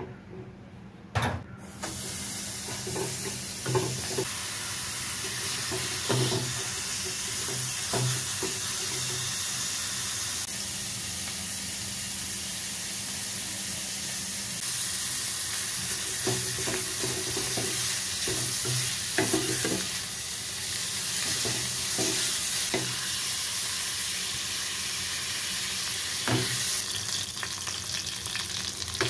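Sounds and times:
fat sizzling in a pan: 1.8s - 29.0s.

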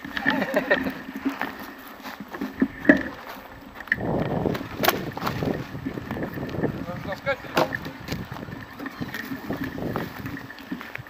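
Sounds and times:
rough rustling: 0.0s - 11.0s.

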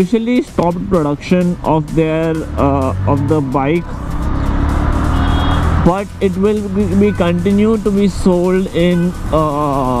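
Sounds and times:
motorcycle engine running: 0.0s - 10.0s
wind and road noise: 0.0s - 10.0s.

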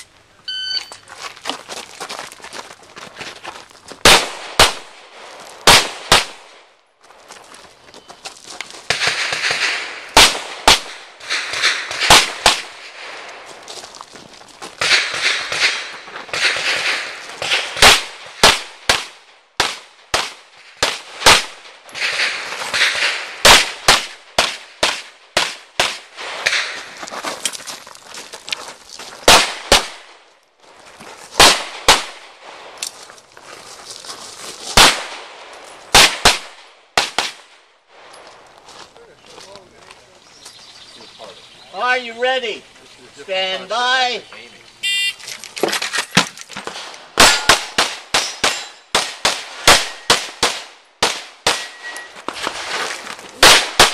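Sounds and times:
pistol shots: 4.0s - 5.0s, 5.6s - 6.6s, 8.9s - 13.2s, 14.8s - 26.9s, 29.2s - 30.2s, 31.4s - 32.3s, 34.7s - 37.5s, 46.7s - 52.1s, 53.4s - 53.9s.

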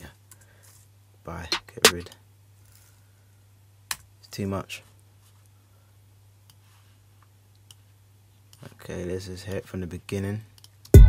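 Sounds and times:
sharp computer click: 1.5s - 2.2s.

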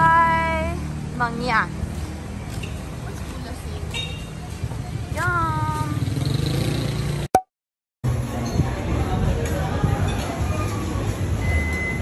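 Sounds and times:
low rumbling street noise: 0.0s - 7.3s, 8.0s - 12.0s.

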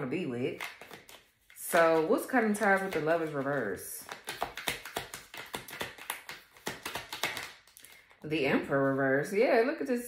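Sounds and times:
cards being shuffled: 0.5s - 8.2s.

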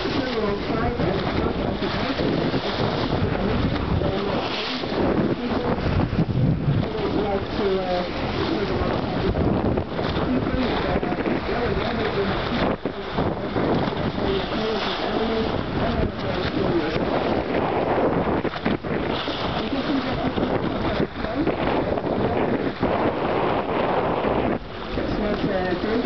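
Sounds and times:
water rushing along boat hull: 0.0s - 26.0s
wind buffeting microphone: 0.0s - 26.0s.

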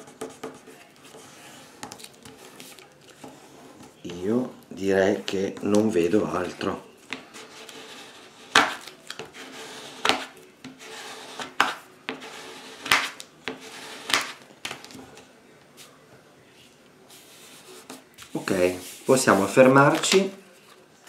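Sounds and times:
plastic scraper scraping paper: 7.3s - 14.9s.

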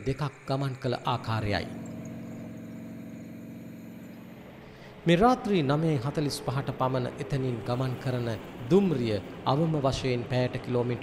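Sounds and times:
distant diesel locomotive drone: 0.0s - 11.0s.

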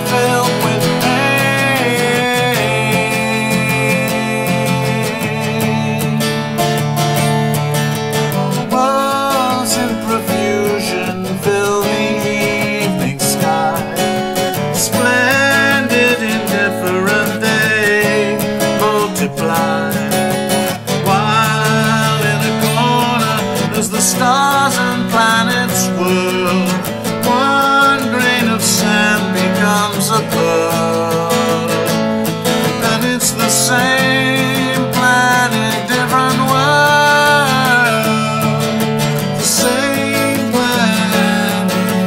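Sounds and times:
acoustic guitar strummed and picked: 0.0s - 42.0s.

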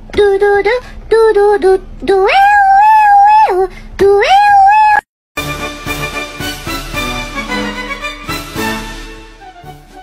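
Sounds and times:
background music: 5.4s - 10.0s.

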